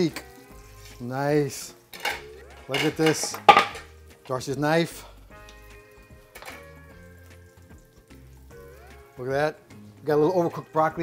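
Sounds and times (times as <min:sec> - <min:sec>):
soft sustained background music: 0:00.0 - 0:11.0.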